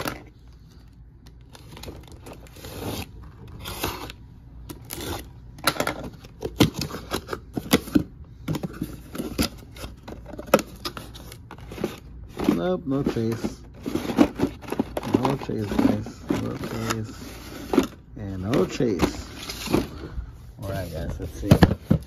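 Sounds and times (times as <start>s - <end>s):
plastic packages clicking and rattling: 0.0s - 2.6s, 5.6s - 20.1s
cardboard and tape tearing: 1.5s - 5.3s.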